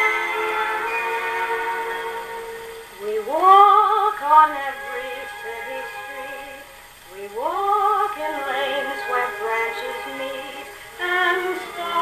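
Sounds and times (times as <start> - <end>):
gramophone playing orchestral song: 0.0 - 12.0
record surface hiss: 0.0 - 12.0.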